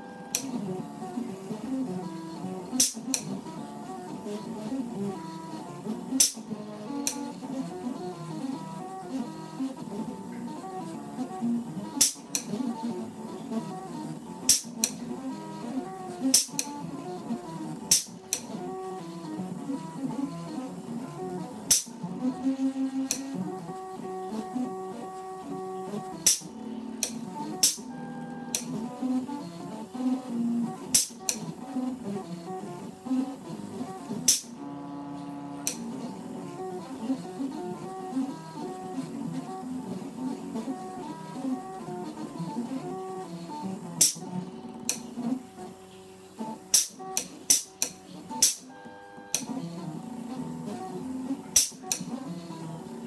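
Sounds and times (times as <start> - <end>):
stepper motors whining in tones: 0.0 - 53.0
sharp clicks: 8.2 - 19.3, 26.1 - 27.9.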